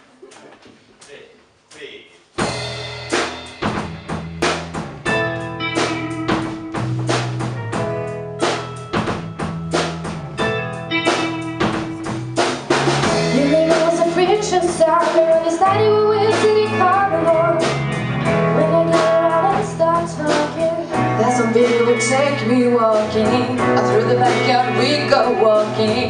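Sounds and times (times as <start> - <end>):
drum kit beat: 1.7 - 26.0
live band playing: 2.4 - 26.0.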